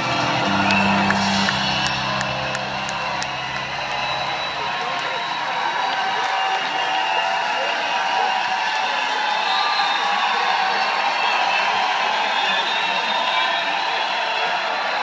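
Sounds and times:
crowd cheering: 0:00.0 - 0:15.0
crowd voices talking and calling out: 0:00.0 - 0:15.0.

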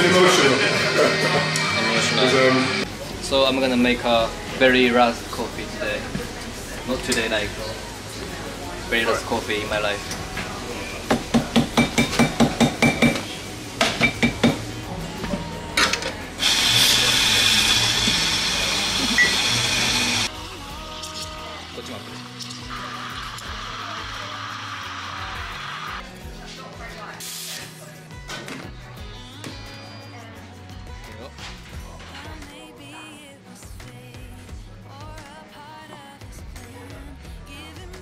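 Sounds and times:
background music: 0:00.0 - 0:38.0
espresso machine whirring: 0:15.8 - 0:20.3, 0:22.6 - 0:26.0
espresso machine hiss: 0:16.4 - 0:20.3, 0:22.6 - 0:26.0.

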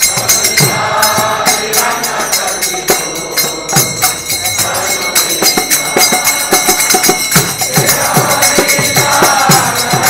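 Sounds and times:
hand drum: 0:00.0 - 0:10.0
small hand cymbals: 0:00.0 - 0:10.0
voices singing a prayer: 0:00.0 - 0:10.0.

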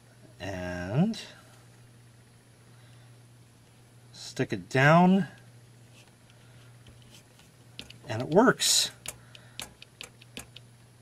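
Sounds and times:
light clicks and taps on plastic lamp: 0:07.8 - 0:10.7.

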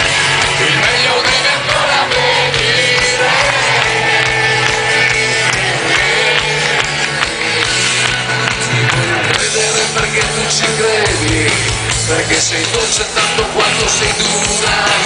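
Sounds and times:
crowd voices: 0:00.0 - 0:15.0
rock band playing loud: 0:00.0 - 0:15.0
person singing: 0:00.4 - 0:15.0.

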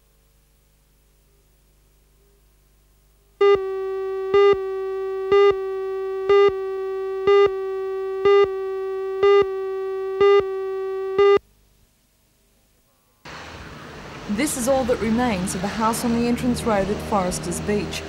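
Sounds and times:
steady buzzy tone: 0:00.0 - 0:13.3
loud beeps: 0:03.4 - 0:11.4.

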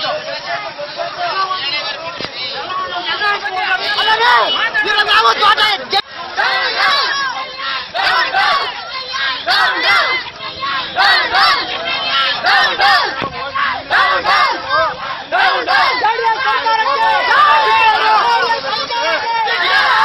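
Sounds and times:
crowd shouting slogans: 0:00.0 - 0:20.0.

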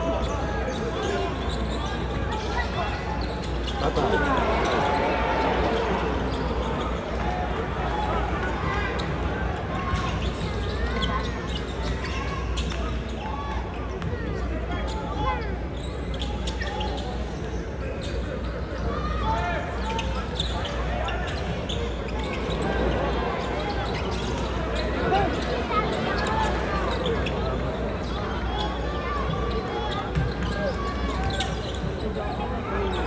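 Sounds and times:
crowd chatter: 0:00.0 - 0:33.0
sneaker squeaks: 0:00.0 - 0:33.0.

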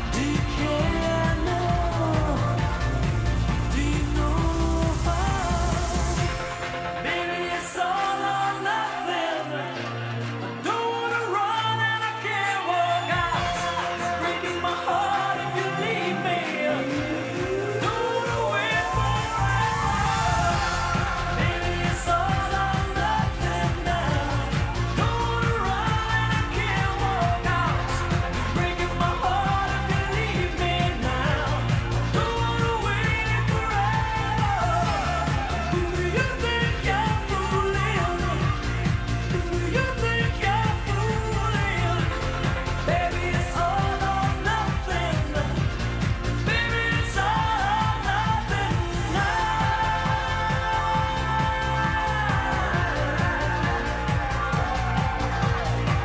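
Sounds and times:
drum beat: 0:00.0 - 0:06.7, 0:13.2 - 0:56.0
person singing: 0:00.0 - 0:56.0
pop-rock band music: 0:00.0 - 0:56.0.

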